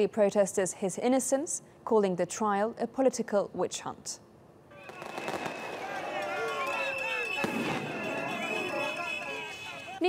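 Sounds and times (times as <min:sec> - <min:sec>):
crowd shouting and cheering: 0:04.8 - 0:10.0
sharp bangs: 0:07.3 - 0:08.9.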